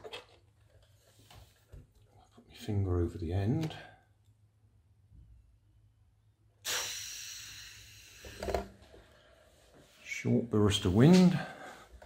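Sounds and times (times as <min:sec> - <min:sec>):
air hissing out of balloon: 0:06.6 - 0:08.8.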